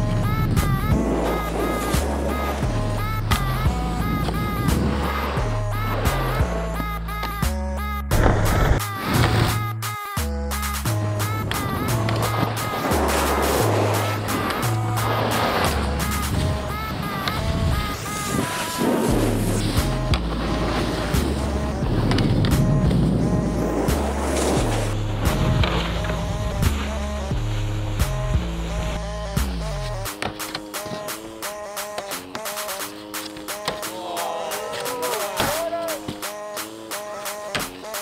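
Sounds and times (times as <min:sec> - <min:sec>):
snowboards scraping on boxes: 0:00.0 - 0:07.4, 0:08.1 - 0:09.7, 0:11.2 - 0:38.0
electronic music with bass line: 0:00.0 - 0:38.0.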